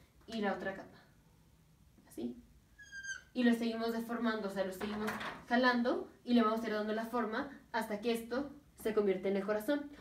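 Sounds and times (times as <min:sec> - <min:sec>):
marker squeaking on whiteboard: 0:02.8 - 0:03.4.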